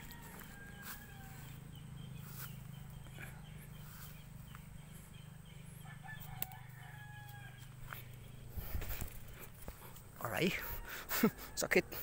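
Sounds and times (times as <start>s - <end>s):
faint rooster crowing: 0.0s - 1.9s, 5.8s - 8.0s, 10.2s - 12.0s
steady low hum: 0.0s - 12.0s.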